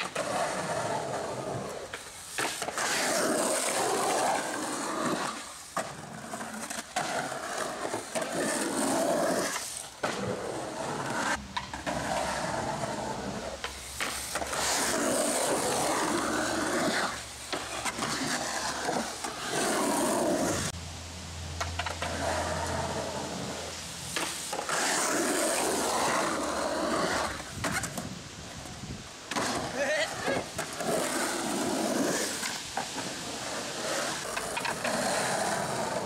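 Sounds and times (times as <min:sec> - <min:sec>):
skateboard clacks: 0:00.0 - 0:08.7, 0:09.3 - 0:20.7, 0:21.6 - 0:28.1, 0:32.1 - 0:36.0
skateboard wheels rolling on concrete: 0:00.0 - 0:36.0.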